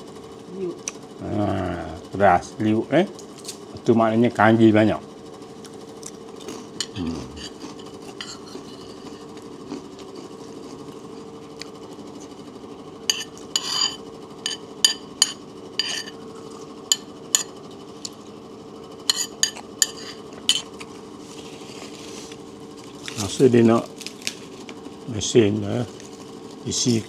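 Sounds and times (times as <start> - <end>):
steady low hum: 0.0 - 27.0
metal spoon scraping a plate: 6.8 - 9.4, 13.1 - 16.2, 19.0 - 20.7.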